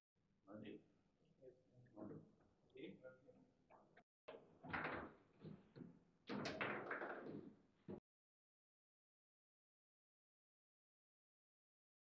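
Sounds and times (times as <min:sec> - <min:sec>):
foosball knocking and clattering: 0:04.3 - 0:08.0.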